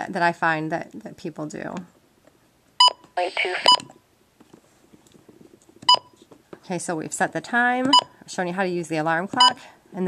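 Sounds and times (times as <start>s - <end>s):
radio keypad beeps: 2.8s - 3.9s
person speaking: 3.2s - 3.8s.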